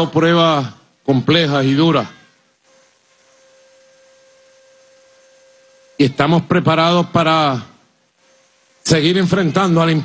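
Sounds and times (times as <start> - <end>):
faint steady hum-like tone: 0.0 - 10.0
low hiss: 0.0 - 10.0.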